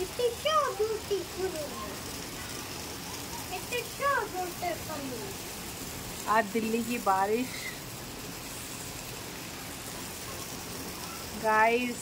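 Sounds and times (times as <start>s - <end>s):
steady rain on rooftops: 0.0s - 12.0s.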